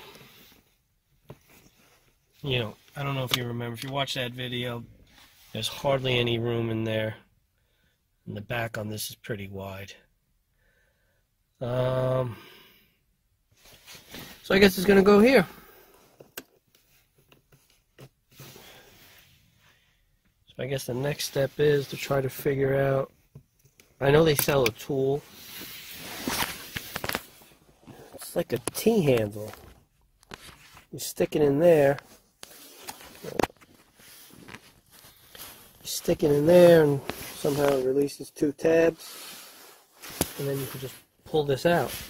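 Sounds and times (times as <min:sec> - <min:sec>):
faint rustling and handling noise: 0:00.0 - 0:07.3, 0:13.4 - 0:42.0.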